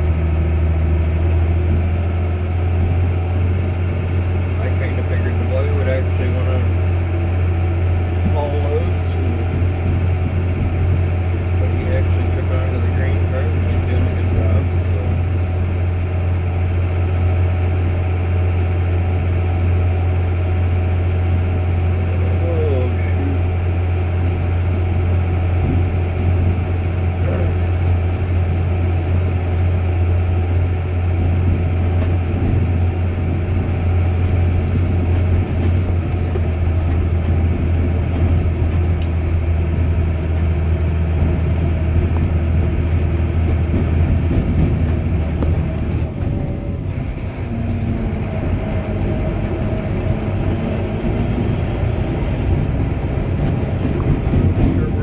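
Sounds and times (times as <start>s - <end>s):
tractor engine humming: 0.0s - 55.0s.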